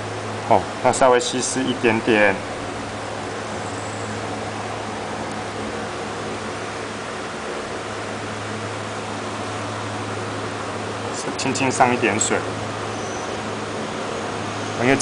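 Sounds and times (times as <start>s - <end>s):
low constant hum: 0.0s - 15.0s.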